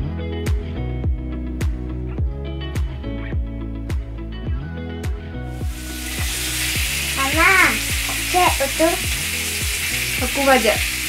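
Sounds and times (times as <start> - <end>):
food sizzling in a frying pan: 5.6 - 11.0.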